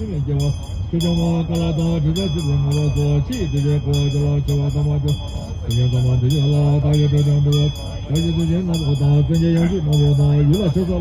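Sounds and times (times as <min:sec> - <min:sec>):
man chanting a prayer: 0:00.0 - 0:11.0
quick ticking beat: 0:00.0 - 0:11.0.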